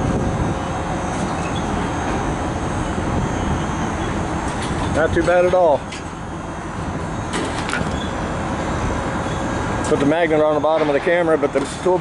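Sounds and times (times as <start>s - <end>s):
low rumble of vehicles and machinery: 0.0s - 12.0s.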